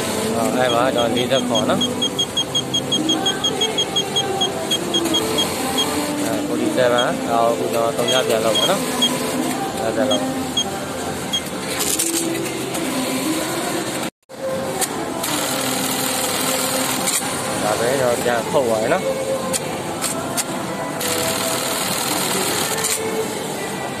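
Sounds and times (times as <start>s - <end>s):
workshop noise: 0.0s - 24.0s
voices: 0.1s - 11.2s
sewing machine running: 15.2s - 17.8s, 21.0s - 23.0s.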